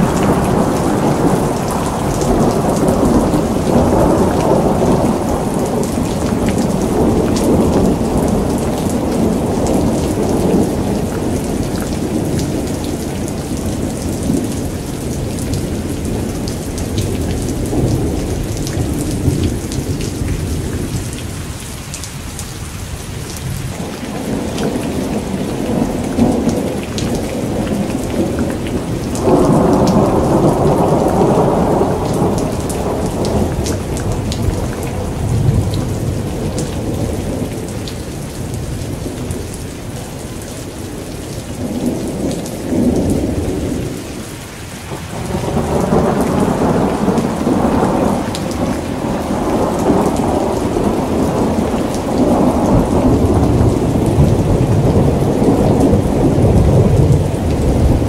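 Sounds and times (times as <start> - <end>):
rumbling thunder: 0.0 - 21.3, 23.4 - 39.5, 41.5 - 44.2, 44.9 - 58.0
rain: 0.0 - 58.0.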